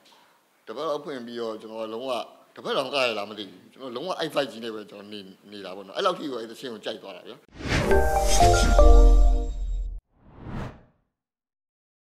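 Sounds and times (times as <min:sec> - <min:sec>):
whoosh sound effect: 0:07.5 - 0:10.9.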